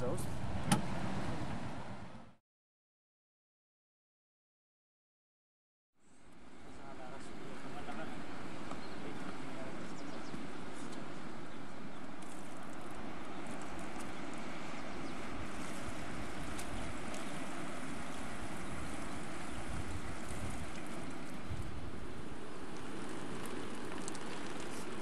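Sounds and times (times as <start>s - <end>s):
wind rushing over microphone: 14.9s - 22.5s.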